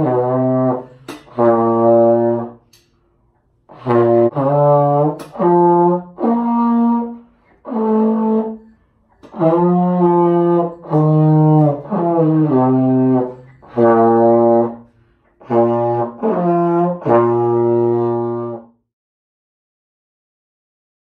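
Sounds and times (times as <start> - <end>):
slide trombone playing: 0.0 - 18.9.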